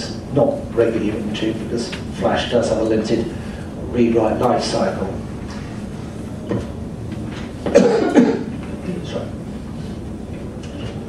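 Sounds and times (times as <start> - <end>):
low room background rumble: 0.0 - 11.0.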